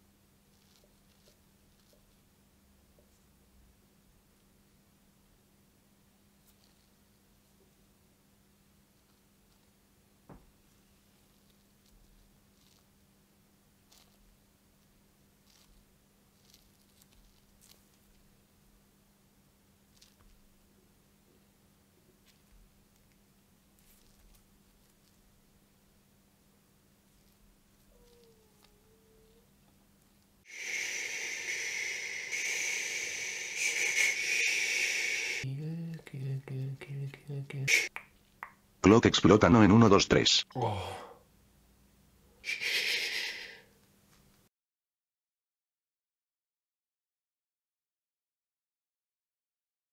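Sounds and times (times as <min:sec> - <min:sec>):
faint low hum: 0:00.0 - 0:30.5, 0:35.2 - 0:42.4
person hushing: 0:30.5 - 0:38.0, 0:40.5 - 0:41.2, 0:42.4 - 0:43.7.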